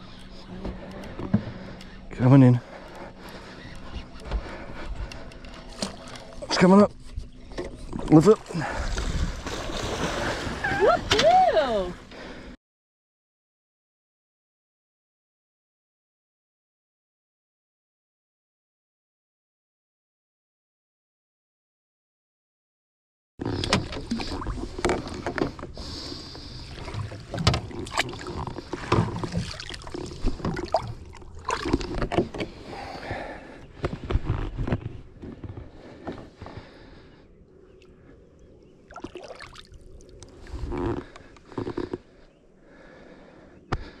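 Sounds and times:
water splashing against a boat: 3.2s - 12.0s, 23.4s - 34.7s, 38.8s - 42.1s.

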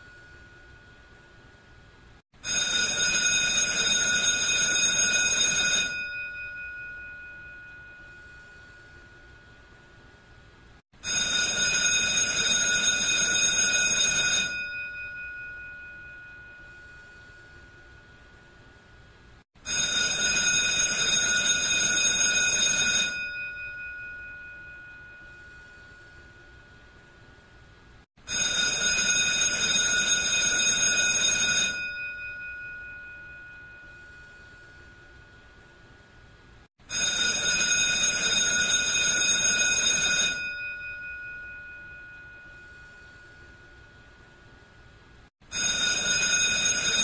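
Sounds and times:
electric bell ringing: 0.0s - 1.3s, 2.4s - 9.7s, 11.0s - 18.3s, 19.6s - 27.0s, 28.3s - 35.8s, 36.9s - 44.4s, 45.5s - 47.0s.

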